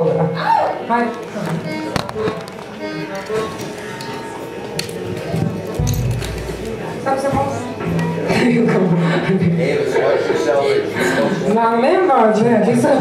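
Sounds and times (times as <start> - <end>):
music: 1.3 - 9.2
people talking: 6.5 - 13.0.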